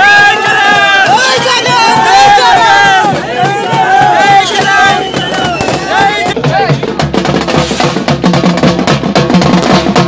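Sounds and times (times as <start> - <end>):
crowd shouting: 0.0 - 7.0
street drum band drumming: 0.0 - 10.0.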